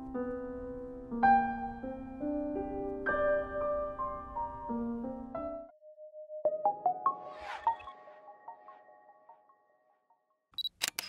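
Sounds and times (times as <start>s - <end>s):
camera shutter beep and clicks: 10.6s - 11.0s.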